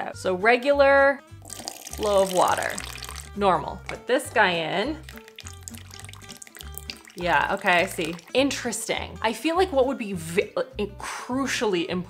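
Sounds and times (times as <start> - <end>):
background music with bass: 0.0 - 12.0
water trickling into bowl: 1.4 - 4.0, 4.9 - 8.6.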